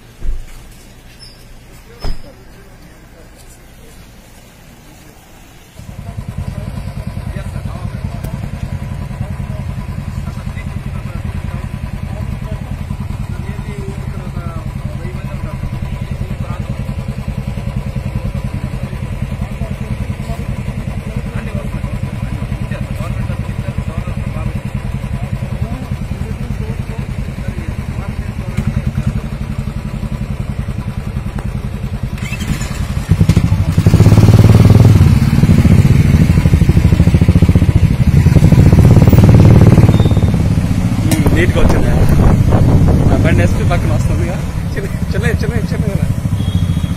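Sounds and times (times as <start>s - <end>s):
motorcycle engines idling: 0.0s - 46.9s
motorcycle engines revving: 5.8s - 46.9s.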